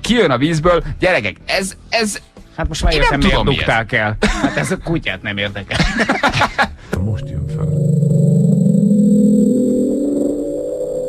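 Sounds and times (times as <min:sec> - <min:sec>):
deep rumbling underwater tone: 0:07.2 - 0:11.0.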